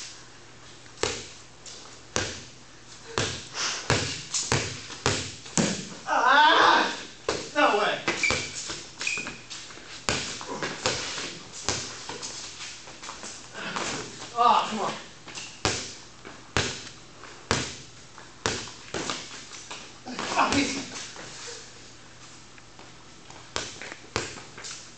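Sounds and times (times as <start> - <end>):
man shouting: 6.1 - 8.1, 14.4 - 15.0, 20.1 - 21.0
sneaker squeaks: 8.1 - 12.7, 15.3 - 15.9.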